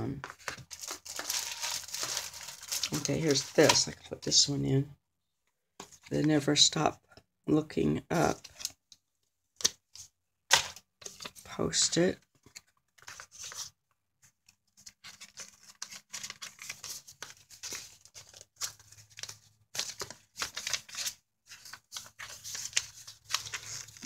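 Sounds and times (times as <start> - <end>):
paper rustling and crinkling: 0.2 - 4.0, 12.3 - 24.0.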